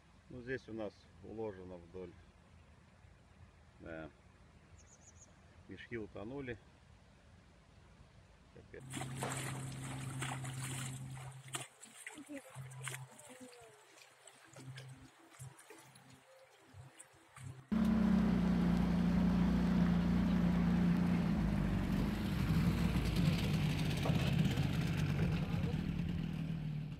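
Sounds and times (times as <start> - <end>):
boat motor running: 8.8 - 11.5, 16.8 - 26.8
rushing water: 8.8 - 22.8.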